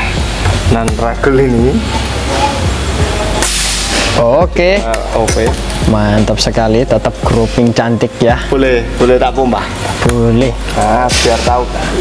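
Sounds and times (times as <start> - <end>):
air rifle shot with hiss: 3.4 - 4.3, 11.1 - 11.6.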